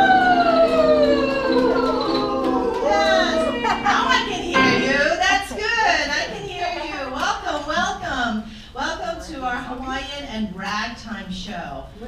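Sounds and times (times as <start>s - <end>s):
held piano chord: 0.0s - 5.5s.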